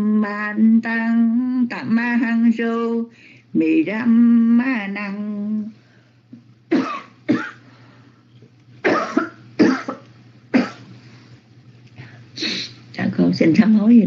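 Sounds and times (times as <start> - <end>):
steady low hum: 0.0 - 14.0
person coughing: 6.7 - 7.6, 8.8 - 10.9.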